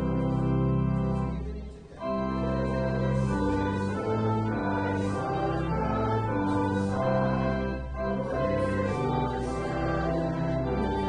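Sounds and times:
church organ chords: 0.0s - 11.0s.

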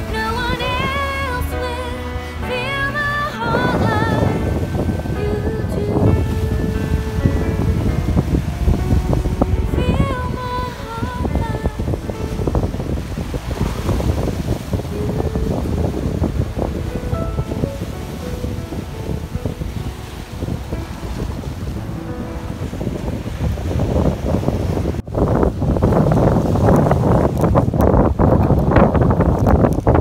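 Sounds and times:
soft background music: 0.0s - 25.2s
waves on rocky shore: 0.0s - 30.0s
wind buffeting microphone: 0.0s - 30.0s.

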